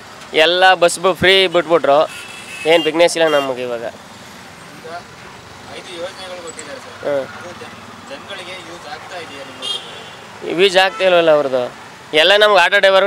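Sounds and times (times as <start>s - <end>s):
street traffic noise: 0.0s - 13.0s.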